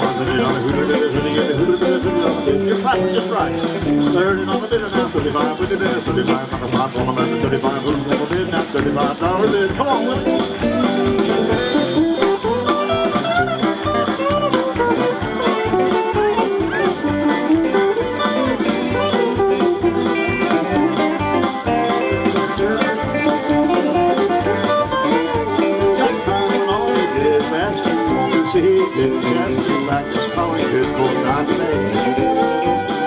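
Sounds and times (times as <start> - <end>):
electric guitar solo: 0.0 - 4.2, 9.5 - 33.0
acoustic guitar: 0.0 - 33.0
bass guitar: 0.0 - 33.0
steady drum beat: 0.0 - 33.0.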